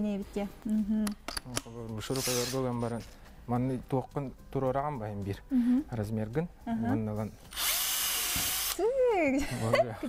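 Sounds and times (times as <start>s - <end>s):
drill boring through foam: 7.5s - 8.8s.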